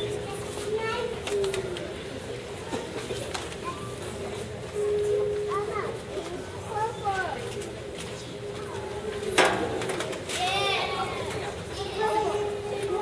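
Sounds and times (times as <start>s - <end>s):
high-pitched children's voices: 0.0s - 2.1s, 3.5s - 4.1s, 5.4s - 7.5s, 10.3s - 13.0s
murmur of people talking: 0.0s - 13.0s.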